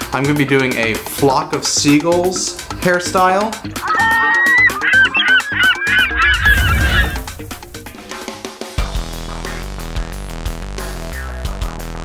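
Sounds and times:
background music: 0:00.0 - 0:12.0
gulls squawking: 0:03.7 - 0:07.8.

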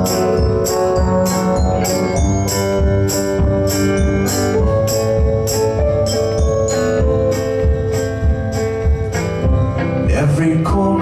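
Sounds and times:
drums keeping a steady beat: 0:00.0 - 0:11.0
electric guitar: 0:00.0 - 0:11.0
keyboard chords: 0:00.0 - 0:11.0.

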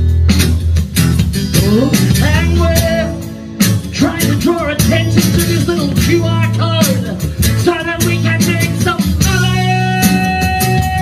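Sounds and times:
electric guitar blues lead: 0:00.0 - 0:11.0.

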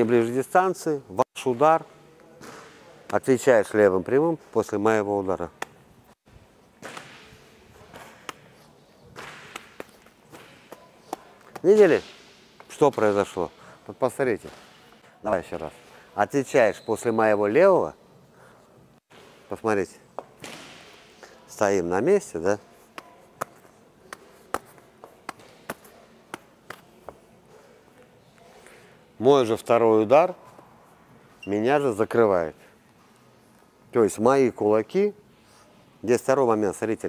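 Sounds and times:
boxing gloves slapping hands: 0:09.2 - 0:11.9, 0:23.0 - 0:27.0.

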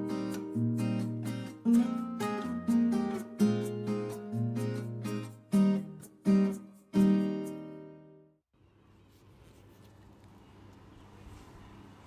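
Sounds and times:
strummed acoustic guitar chords: 0:00.0 - 0:08.2.

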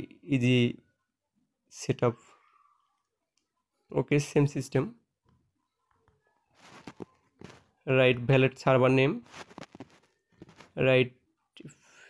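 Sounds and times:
man speaking: 0:00.0 - 0:00.8, 0:01.7 - 0:02.3, 0:03.9 - 0:05.0, 0:07.8 - 0:09.3.

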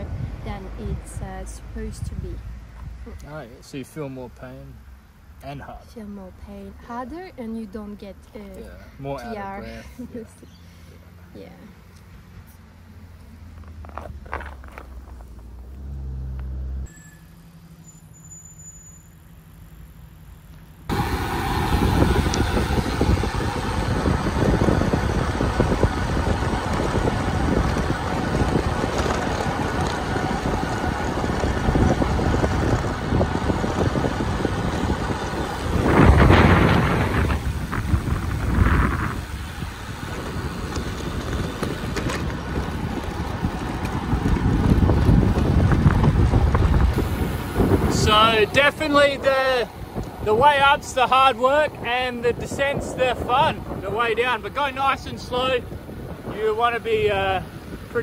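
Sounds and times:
wind rushing over microphone: 0:00.0 - 0:03.1, 0:20.9 - 0:58.0
road noise: 0:00.0 - 0:58.0.

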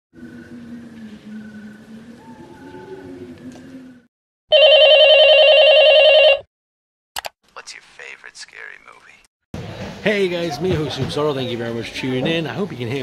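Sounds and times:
telephone ringing: 0:04.5 - 0:06.5.

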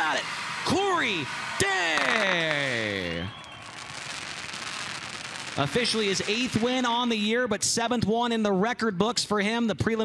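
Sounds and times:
man shouting: 0:00.0 - 0:03.4
spark fountains spraying: 0:03.9 - 0:07.2.

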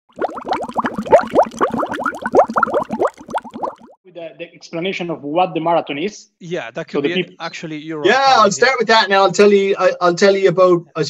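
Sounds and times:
bubbling water plops: 0:00.1 - 0:04.0.

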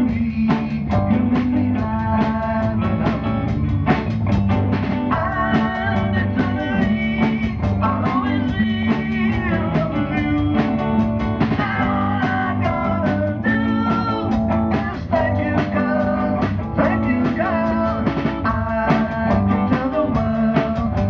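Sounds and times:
lead vocalist singing: 0:00.0 - 0:03.5, 0:05.0 - 0:21.0
drum kit beat: 0:00.0 - 0:21.0
electric guitars: 0:00.0 - 0:21.0.

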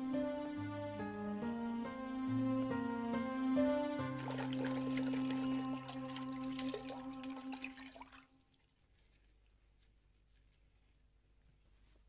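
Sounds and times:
background music chords: 0:00.0 - 0:07.7
water splashing and dripping: 0:04.2 - 0:09.5
cloth wrung out in bucket: 0:04.2 - 0:10.6.

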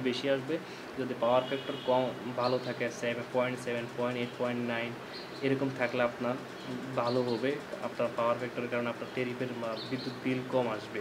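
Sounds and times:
man lecturing: 0:00.0 - 0:11.0.

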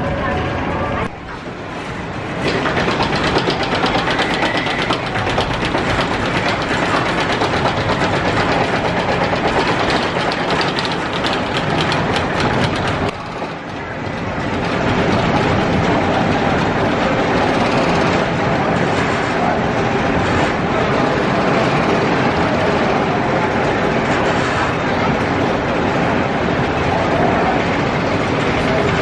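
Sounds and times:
roller coaster running noise: 0:00.0 - 0:29.0
roller coaster lift chain clicking: 0:01.3 - 0:29.0.

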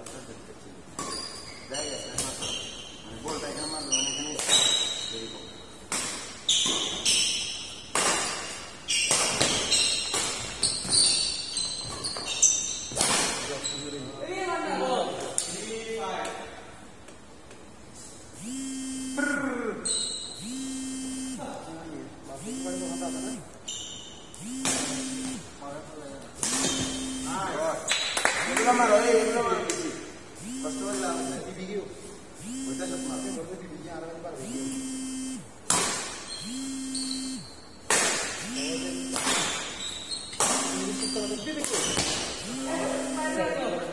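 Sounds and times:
sneakers squeaking on court: 0:00.9 - 0:05.4, 0:06.2 - 0:14.1, 0:23.6 - 0:25.4, 0:26.4 - 0:27.2, 0:36.0 - 0:42.5
racket hitting shuttlecock: 0:05.9 - 0:10.6, 0:35.6 - 0:36.3, 0:37.9 - 0:38.4, 0:39.1 - 0:40.9
repeating low electronic tone: 0:18.4 - 0:19.6, 0:20.4 - 0:21.5, 0:22.3 - 0:23.5, 0:24.4 - 0:25.6, 0:26.5 - 0:27.6, 0:30.4 - 0:31.6, 0:32.4 - 0:33.6, 0:34.4 - 0:35.6, 0:36.3 - 0:37.6, 0:38.4 - 0:39.5, 0:40.6 - 0:41.6, 0:42.4 - 0:43.7
voices: 0:18.4 - 0:23.6, 0:24.4 - 0:35.4, 0:38.4 - 0:39.5, 0:40.4 - 0:43.9.

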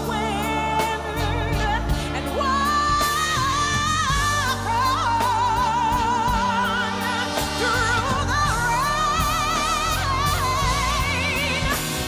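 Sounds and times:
live band bass and drums: 0:00.0 - 0:12.0
woman singing with vibrato: 0:00.0 - 0:12.0.

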